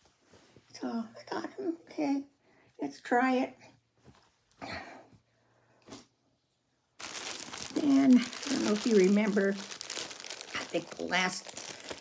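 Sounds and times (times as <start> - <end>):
plastic bag crinkling: 7.0 - 12.0.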